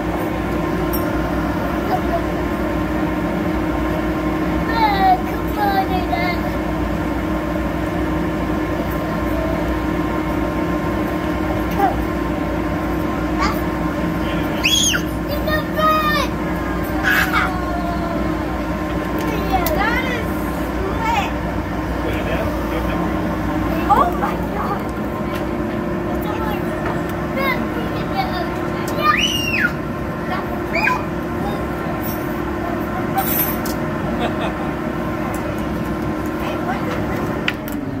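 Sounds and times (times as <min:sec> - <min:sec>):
air blower humming: 0:00.0 - 0:38.0.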